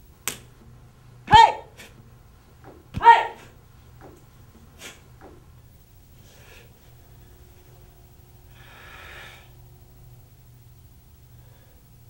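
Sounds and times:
sharp snap: 0.2s - 0.6s
person shouting: 1.3s - 1.8s, 3.0s - 3.5s.

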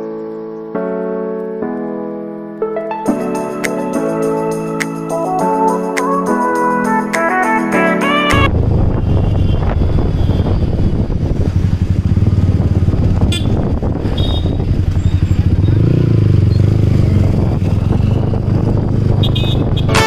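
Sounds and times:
motorcycle engine running: 8.5s - 19.9s.

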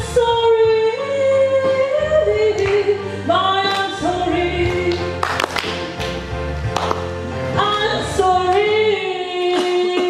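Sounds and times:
woman singing: 0.0s - 5.2s, 7.5s - 10.0s
held accompaniment chords: 0.2s - 10.0s.

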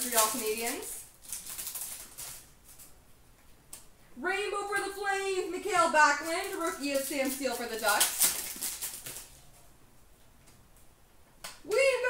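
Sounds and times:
trading cards being shuffled: 6.2s - 9.4s.

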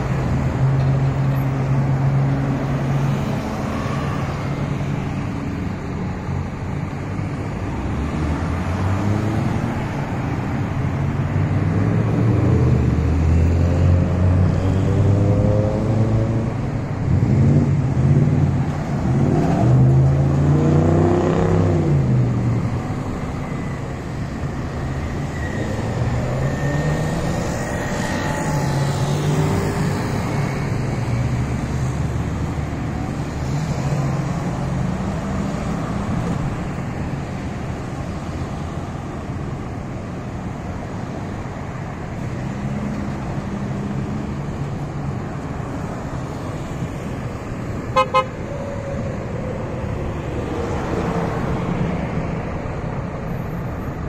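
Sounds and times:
cars driving past: 0.0s - 54.0s.

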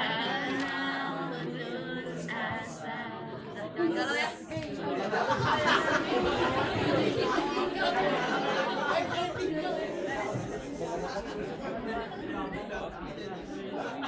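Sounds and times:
many people talking: 0.0s - 14.0s
unaccompanied voices singing: 0.0s - 14.0s.

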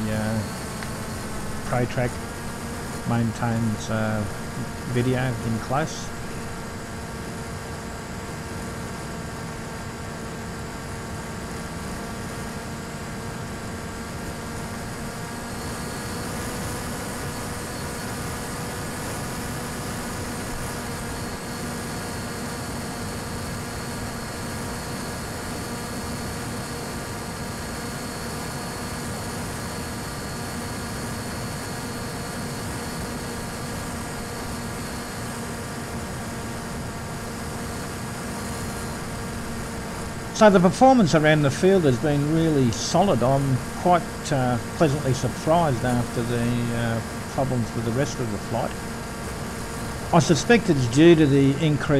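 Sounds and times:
video link hiss: 0.0s - 0.6s, 3.0s - 6.5s, 40.4s - 48.8s, 50.1s - 51.9s
faint high whine: 0.0s - 51.9s
model plane electric motor drone: 0.0s - 51.9s.

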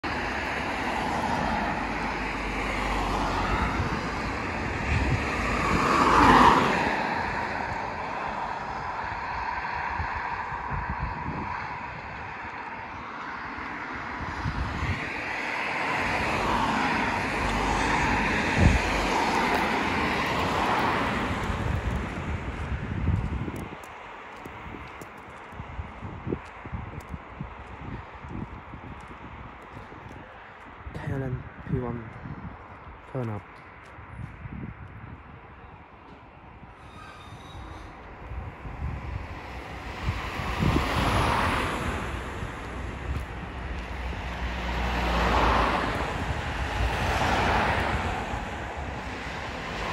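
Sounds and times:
vehicles passing: 0.0s - 49.9s.

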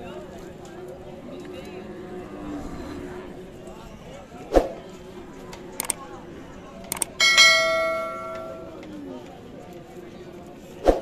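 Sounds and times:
double mouse click: 5.8s - 6.0s, 6.9s - 7.1s
bell notification chime: 7.2s - 8.8s.

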